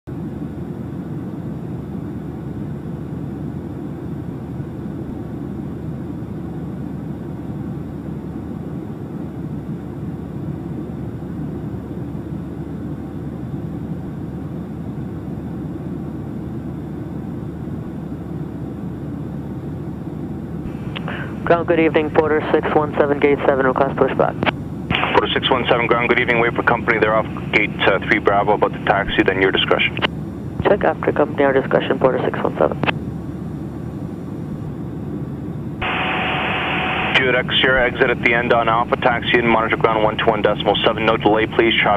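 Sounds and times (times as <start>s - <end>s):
airplane engine drone in cabin: 0.1s - 41.9s.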